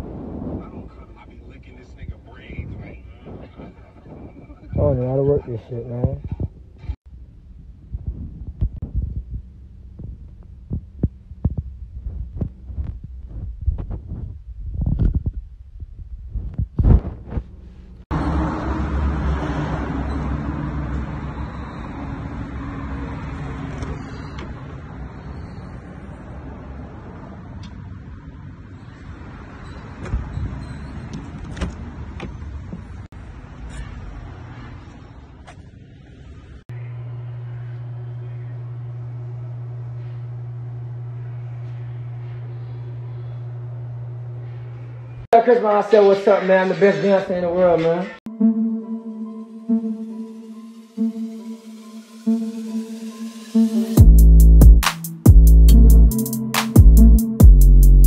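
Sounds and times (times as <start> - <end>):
low hum: 6.5 - 18.9, 36.7 - 45.3, 48.3 - 56.1
car in parking garage: 17.5 - 45.3.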